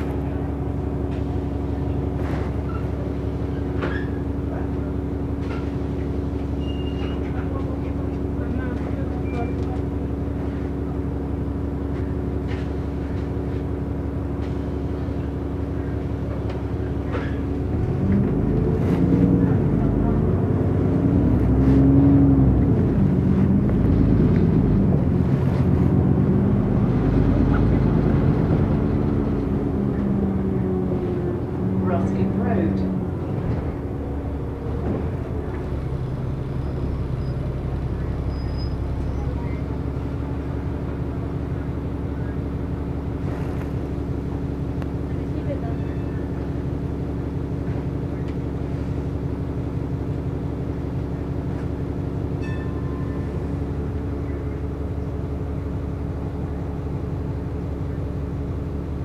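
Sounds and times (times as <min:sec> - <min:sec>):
bus engine drone: 0:00.0 - 0:59.0.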